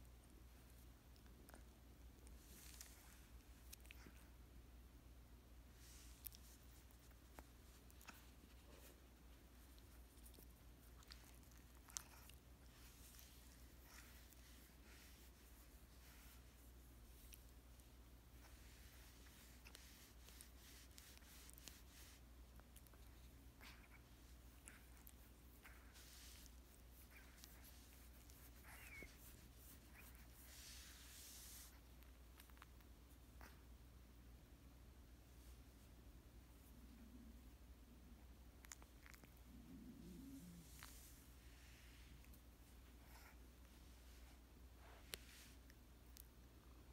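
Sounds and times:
soft rustles: 0:00.0 - 0:04.5, 0:05.6 - 0:33.7, 0:38.5 - 0:46.9.

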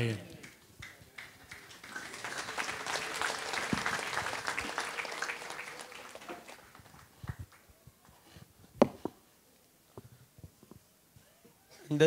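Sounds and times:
congregation applauding: 0:00.0 - 0:08.1.

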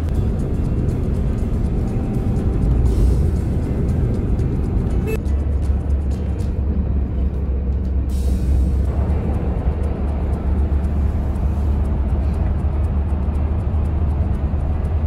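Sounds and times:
car driving on road rumble: 0:00.0 - 0:15.0
music playing: 0:00.0 - 0:15.0.

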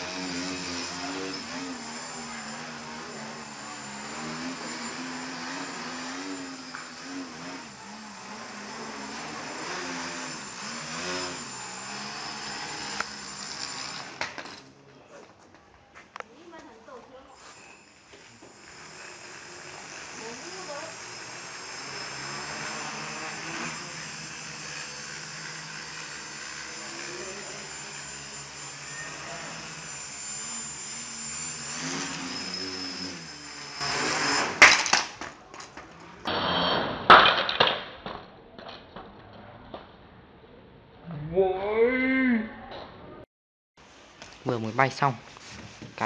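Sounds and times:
drone propellers whining: 0:00.0 - 0:14.6, 0:17.5 - 0:34.6.

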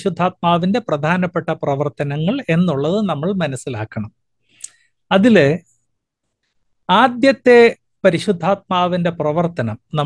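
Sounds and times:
man speaking: 0:00.0 - 0:04.2, 0:05.1 - 0:05.7, 0:06.8 - 0:10.0.

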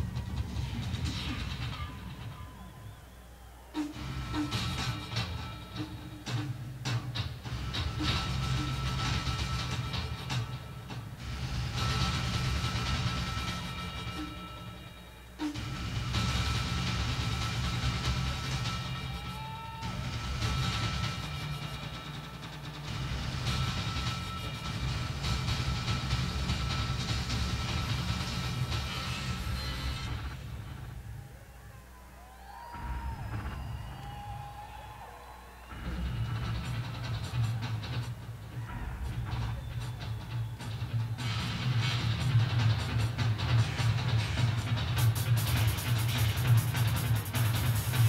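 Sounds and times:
drums and electronics improvisation: 0:00.0 - 0:48.0
hissing cymbals: 0:02.5 - 0:30.8.

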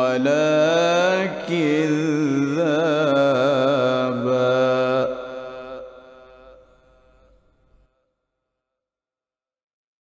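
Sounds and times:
man reciting melodically: 0:00.0 - 0:06.6.

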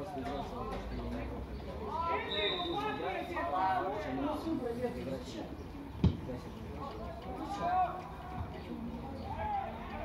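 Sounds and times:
indistinct shouts and voices: 0:01.6 - 0:04.5, 0:06.8 - 0:10.0
football kicked with dull thump: 0:06.0 - 0:06.3.

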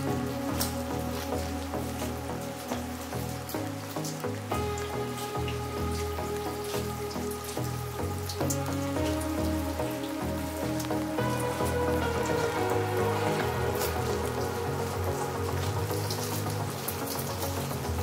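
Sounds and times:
light rain with drops: 0:00.0 - 0:18.0
soft background music: 0:00.0 - 0:18.0.

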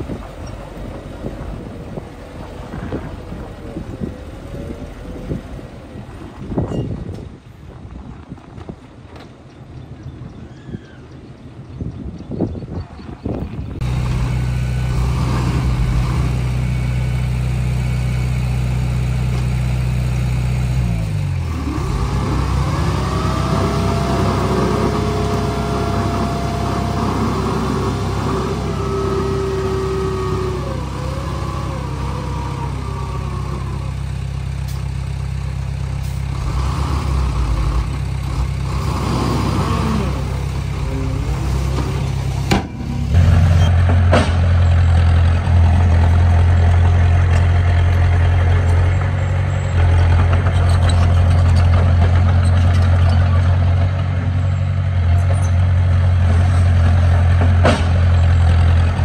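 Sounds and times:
diesel truck engine running: 0:00.0 - 0:08.4, 0:11.4 - 0:59.0
bulldozer engine: 0:00.0 - 0:59.0
hydraulic hoist whine: 0:21.6 - 0:34.8.

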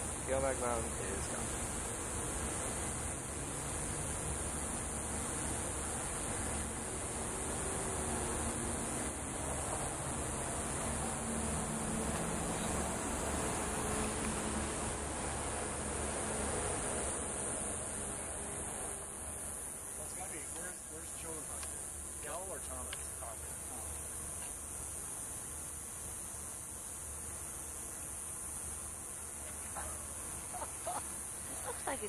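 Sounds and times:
high-pitched insect chorus: 0:00.0 - 0:32.0.

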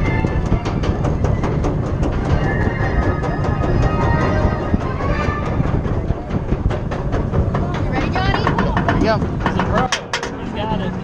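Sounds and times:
roller coaster wheels rumbling: 0:00.0 - 0:11.0
sharp clacks and rattles: 0:00.0 - 0:11.0
wind buffeting microphone: 0:00.0 - 0:11.0.

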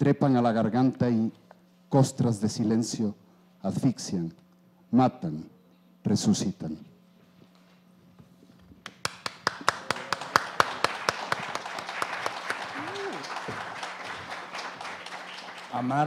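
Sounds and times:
audience applause: 0:09.0 - 0:16.0.

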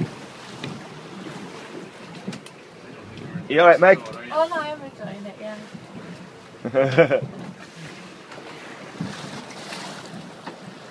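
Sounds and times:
boat bump: 0:00.0 - 0:10.9
choppy sea water: 0:00.0 - 0:10.9
wind buffeting microphone: 0:00.0 - 0:10.9.

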